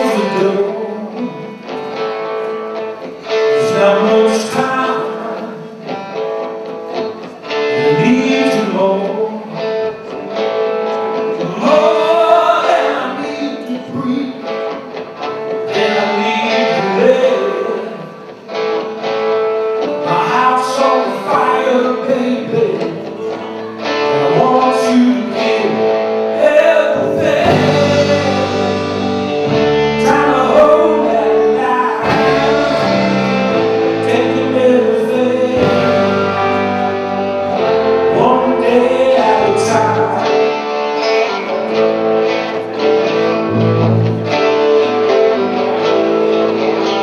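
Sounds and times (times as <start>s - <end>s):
person singing: 0.0s - 2.6s, 3.2s - 18.4s, 19.8s - 47.0s
guitars strumming: 0.0s - 47.0s
rock band playing: 0.0s - 47.0s
drums: 26.4s - 46.4s
deep bass notes: 27.0s - 40.4s.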